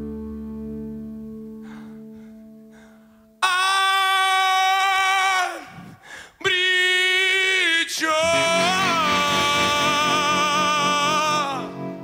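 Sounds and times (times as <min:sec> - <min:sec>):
man singing long note: 0:03.4 - 0:12.0
band holding chord: 0:08.2 - 0:12.0.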